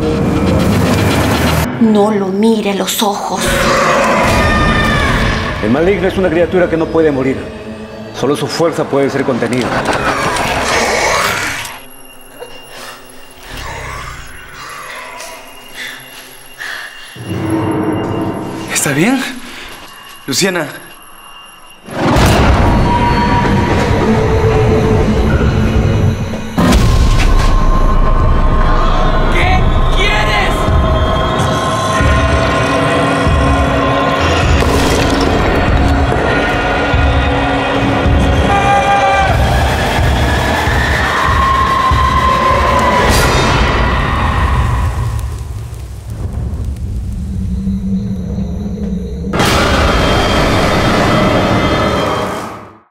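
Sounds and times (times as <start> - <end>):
heavy rumbling horror score: 0.0 - 52.9.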